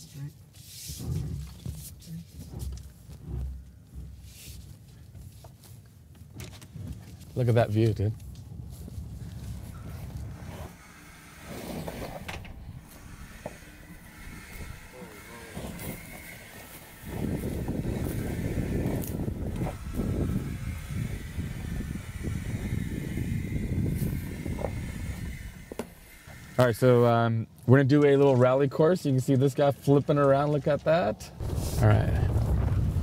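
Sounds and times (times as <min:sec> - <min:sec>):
tyre and cabin noise: 0:00.9 - 0:27.0
rough uneven rumble: 0:00.9 - 0:33.0.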